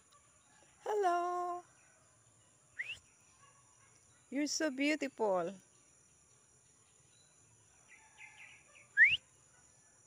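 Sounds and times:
faint bird chirps: 0:00.0 - 0:10.0
rising whistle: 0:09.0 - 0:09.2.

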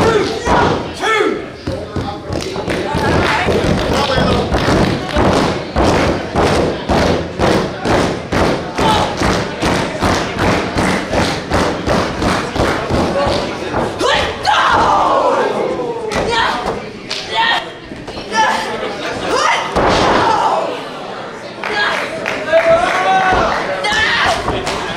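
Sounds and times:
crowd thumping a beat: 0:00.0 - 0:15.2, 0:23.0 - 0:24.9
crowd voices: 0:00.0 - 0:24.9
loud shout: 0:14.0 - 0:16.6.

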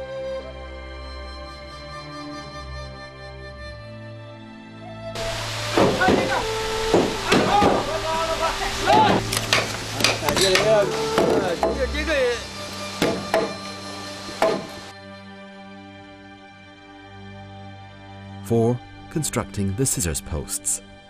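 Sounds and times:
soft background music: 0:00.0 - 0:21.0
hammer knocking on wood: 0:05.7 - 0:07.9, 0:08.9 - 0:11.8, 0:13.0 - 0:13.6, 0:14.3 - 0:14.8.

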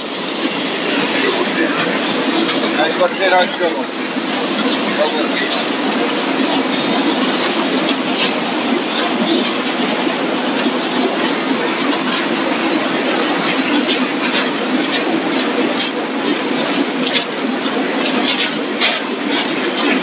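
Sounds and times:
conveyor machinery running: 0:00.0 - 0:20.0.

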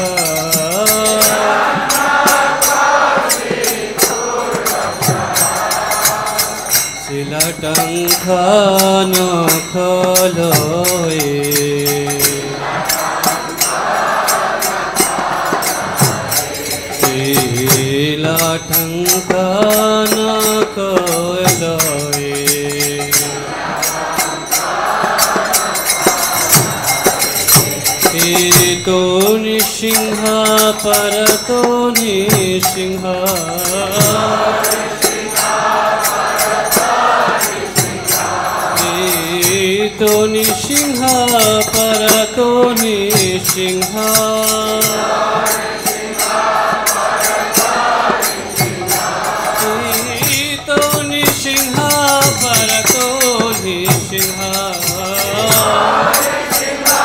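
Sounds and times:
hand cymbals beat: 0:00.0 - 0:57.0
person singing a hymn: 0:00.0 - 0:57.0.

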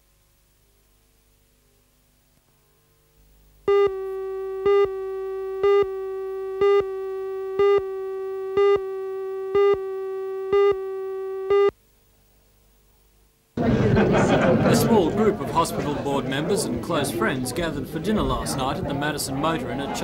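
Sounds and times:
steady electronic tone: 0:03.6 - 0:11.7
countdown beeps: 0:03.7 - 0:11.7.

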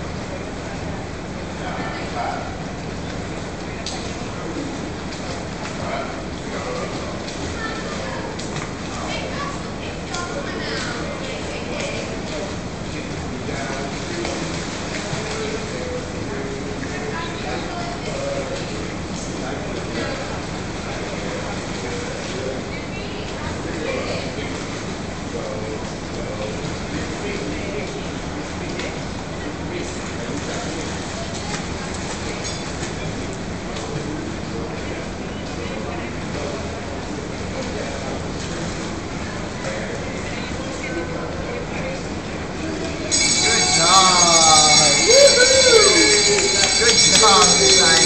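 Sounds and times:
background hubbub: 0:00.0 - 0:48.0
echoing swimming pool hall noise: 0:00.0 - 0:48.0.

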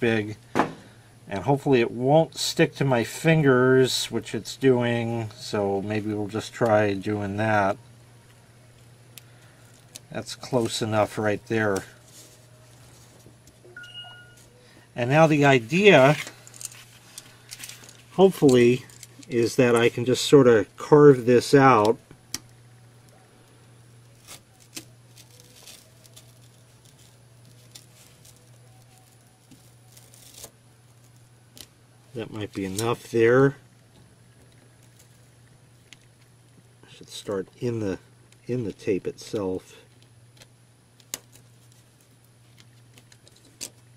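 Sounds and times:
steady low hum: 0:00.0 - 0:43.9
tape handled between fingers: 0:24.0 - 0:33.0, 0:38.6 - 0:43.9
razor blade scratching through tape: 0:24.1 - 0:30.6.

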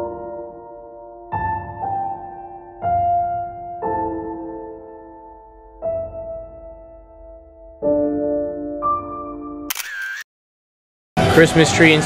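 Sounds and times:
camera shutter sound effect: 0:09.7 - 0:10.3.

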